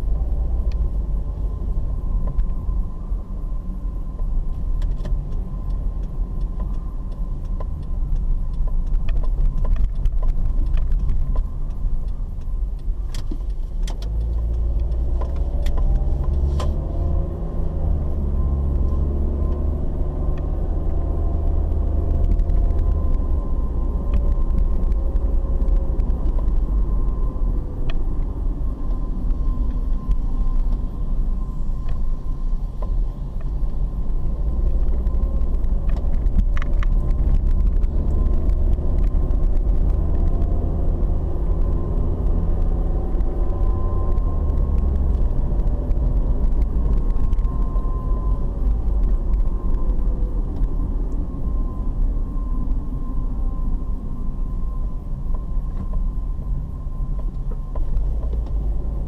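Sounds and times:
car driving rumble: 0.0s - 59.0s
faint whine: 14.2s - 59.0s.

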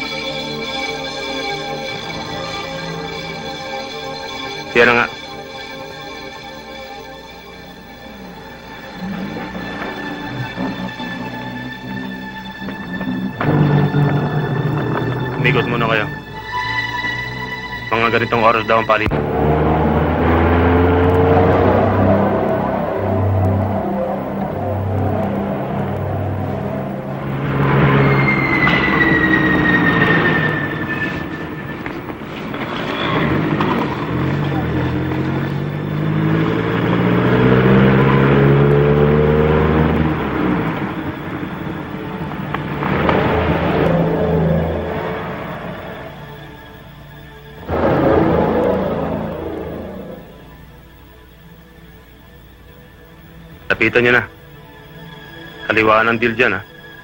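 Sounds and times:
car engine accelerating: 7.3s - 53.7s
thin high tone sliding downward: 8.3s - 42.2s, 43.2s - 51.8s.

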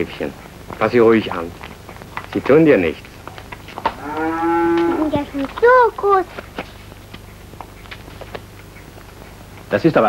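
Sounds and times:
calf mooing: 4.0s - 5.2s.

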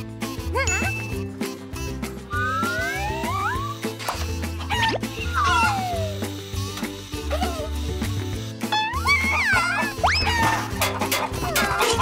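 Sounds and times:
cartoon music with bass line: 0.0s - 12.0s.

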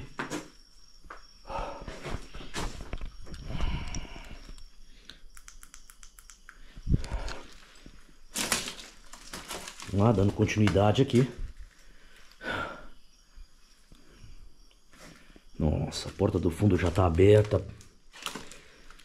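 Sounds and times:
footsteps on debris: 7.4s - 11.7s.

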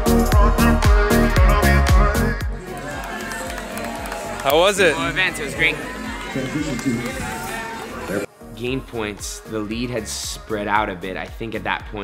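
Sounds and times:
background music: 0.0s - 12.0s
crowd talking: 2.5s - 8.9s.

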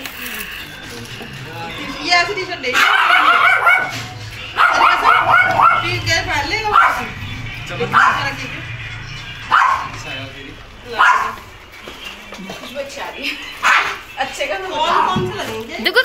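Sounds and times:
dog barking: 2.7s - 7.2s, 7.9s - 8.4s, 9.5s - 10.0s, 10.9s - 11.5s, 13.6s - 14.1s.

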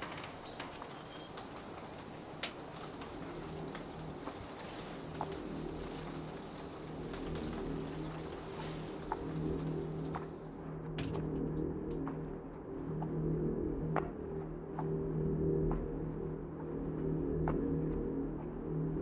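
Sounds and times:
steady hiss with faint ticks: 0.0s - 10.5s.

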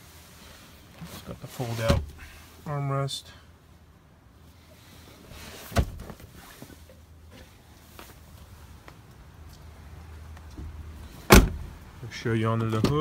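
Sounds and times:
soft rustling: 0.0s - 2.8s, 4.4s - 11.8s
sharp thump: 11.3s - 11.7s.

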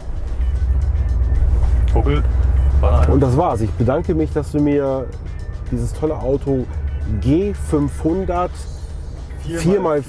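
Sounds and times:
background music: 0.0s - 10.0s
engine rumble inside car: 0.0s - 10.0s.

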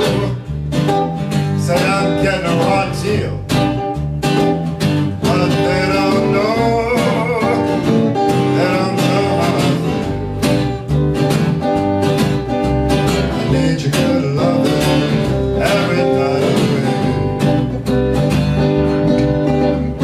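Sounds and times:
acoustic guitar strumming: 0.0s - 20.0s
live band playing guitars: 0.0s - 20.0s.

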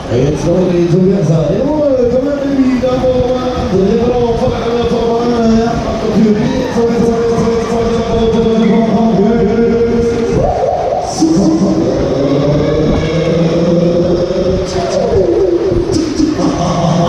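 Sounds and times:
loud music with singing: 5.3s - 17.0s.

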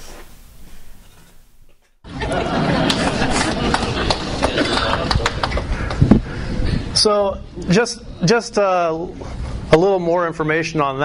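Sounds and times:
audience clapping: 2.2s - 6.2s.

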